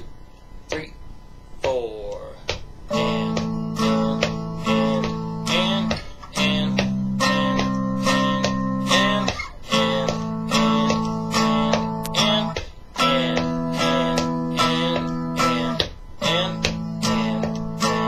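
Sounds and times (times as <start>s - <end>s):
electric guitar string bending: 1.6s - 18.0s.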